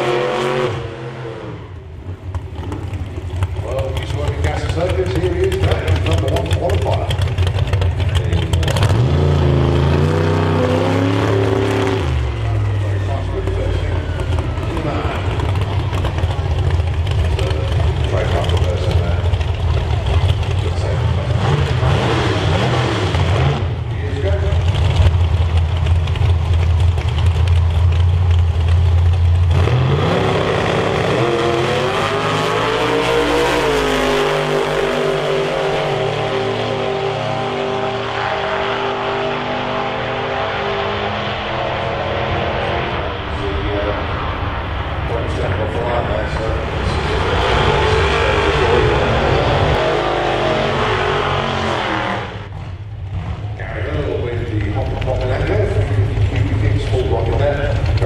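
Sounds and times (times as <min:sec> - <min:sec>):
drag race car engines revving: 0:00.0 - 0:58.0.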